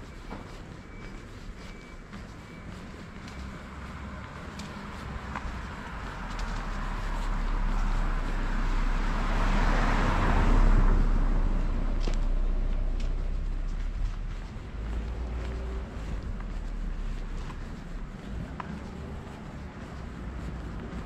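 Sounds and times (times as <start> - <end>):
vehicle passing by: 3.4 - 21.0
steady low rumble: 10.3 - 21.0.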